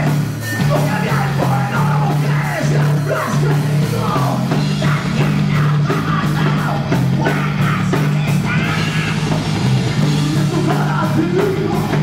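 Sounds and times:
man singing into a microphone: 0.0s - 9.4s, 10.0s - 12.0s
bass guitar: 0.0s - 12.0s
drum kit beat: 0.0s - 12.0s
electric guitar: 0.0s - 12.0s.

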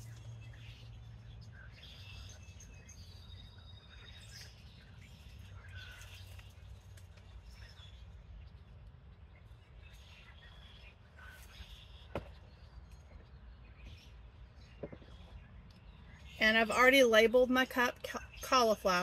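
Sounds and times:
bird chirps: 0.0s - 19.0s
low background rumble: 0.0s - 19.0s.

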